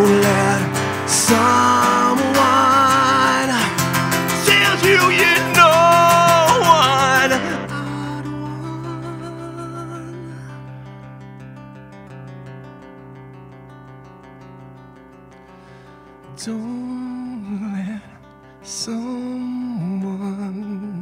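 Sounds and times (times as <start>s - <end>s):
man singing long notes: 0.0s - 10.5s
acoustic guitar picking: 0.0s - 21.0s.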